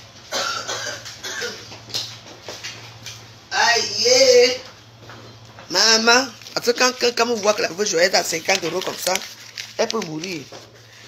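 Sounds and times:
person coughing: 0:00.3 - 0:01.7.

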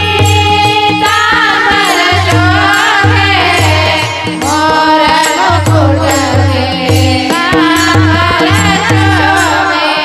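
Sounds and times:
drum beats and percussion: 0:00.0 - 0:10.0
woman singing into a microphone: 0:00.0 - 0:10.0.

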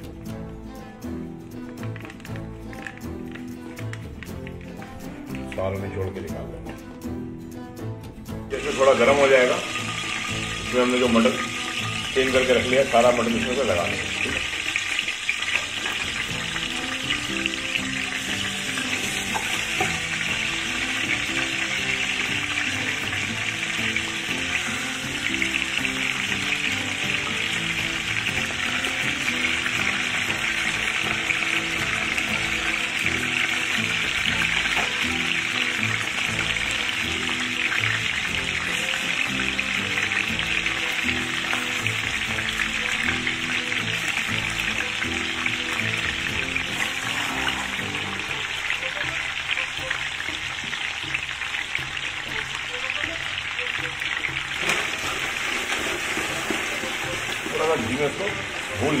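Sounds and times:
meat sizzling in hot fat: 0:08.3 - 0:59.0.

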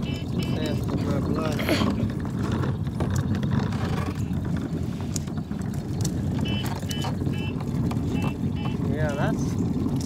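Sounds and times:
plastic wheels rolling over asphalt: 0:00.0 - 0:10.0.

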